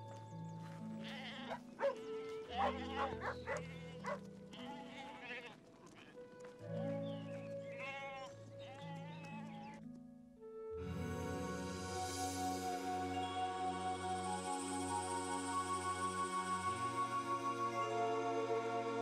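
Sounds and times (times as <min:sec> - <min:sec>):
soft background music: 0:00.0 - 0:19.0
sheep bleating: 0:01.0 - 0:06.2, 0:07.2 - 0:09.8.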